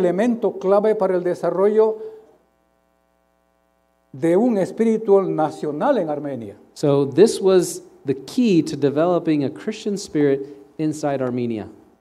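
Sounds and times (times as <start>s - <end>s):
man talking: 0.0s - 2.0s, 4.2s - 11.8s
faint electrical hum: 0.0s - 12.0s.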